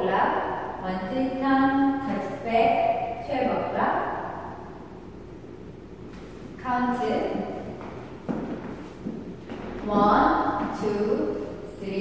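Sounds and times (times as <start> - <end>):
heeled shoes tapping on wood floor: 7.8 - 10.9.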